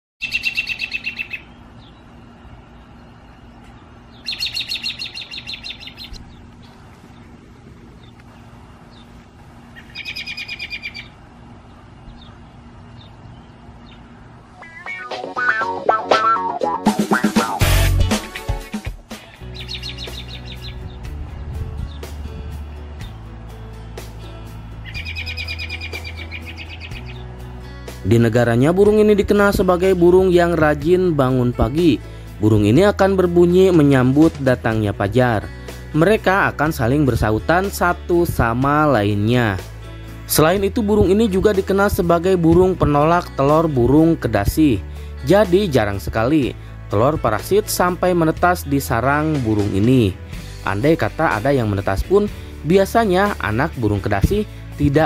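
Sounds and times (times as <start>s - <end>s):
bird calling rapid high notes: 0.2s - 6.2s, 9.7s - 11.2s, 13.9s - 21.0s, 24.2s - 27.4s
bird chirping trill: 0.2s - 46.3s
background music low notes: 0.3s - 55.0s.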